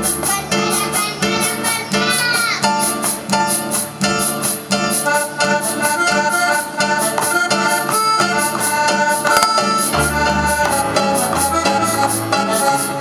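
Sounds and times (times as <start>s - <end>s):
accordion melody: 0.0s - 13.0s
acoustic guitar chords: 0.0s - 13.0s.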